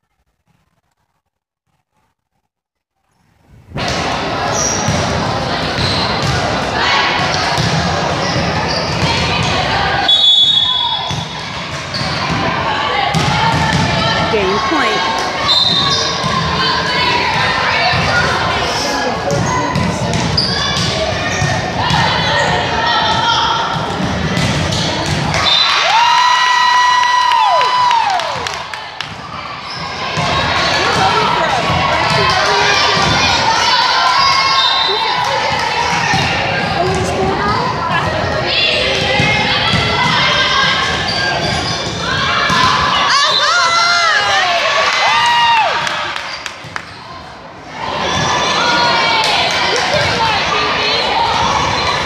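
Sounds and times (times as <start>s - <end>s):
murmur of spectators talking: 3.7s - 52.0s
volleyball hits and thuds: 11.0s - 14.3s, 23.1s - 25.5s.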